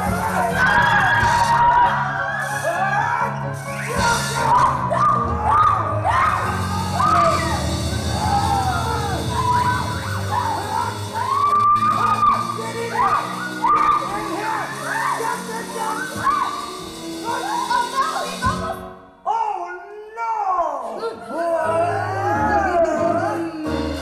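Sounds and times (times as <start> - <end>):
drums: 0.0 - 18.9
keyboard lead line: 0.0 - 19.2
steady bass: 2.6 - 18.9.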